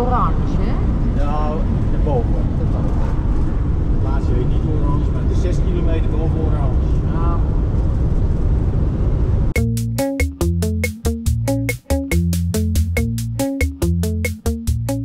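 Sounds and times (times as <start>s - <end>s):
road and engine rumble: 0.0s - 11.8s
music with a beat: 9.6s - 15.0s.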